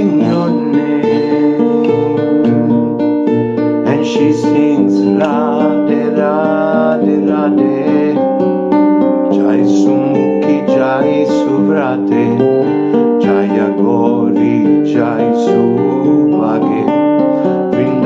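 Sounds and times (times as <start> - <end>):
man singing with vibrato: 0.0 - 3.0, 3.8 - 18.0
acoustic guitar: 0.0 - 18.0.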